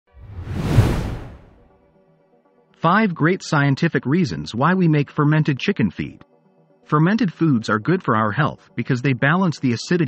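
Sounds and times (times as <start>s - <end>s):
whoosh: 0.1s - 1.7s
low rumble: 0.2s - 1.7s.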